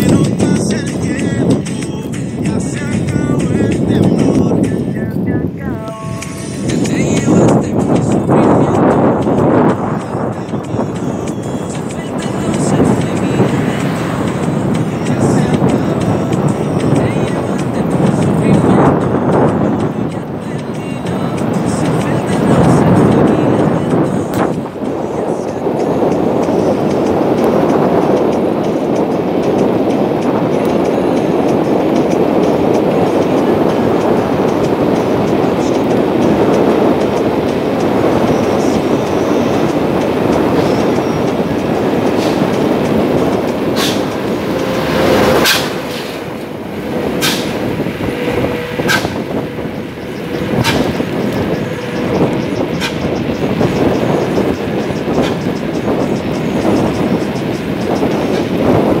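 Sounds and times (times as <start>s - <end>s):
wind rushing over microphone: 0.0s - 59.0s
sharp clicks or knocks: 43.8s - 46.3s, 47.2s - 47.6s.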